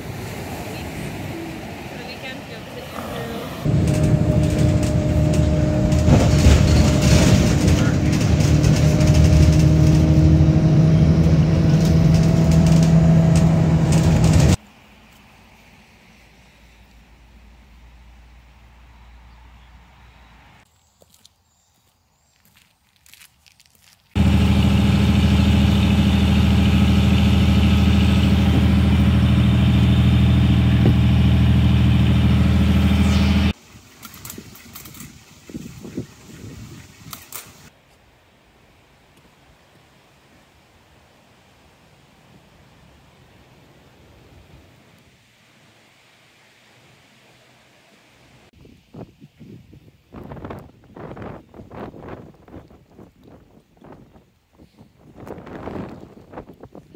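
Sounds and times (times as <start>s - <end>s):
car engine and road noise: 0.0s - 20.9s, 24.1s - 39.1s.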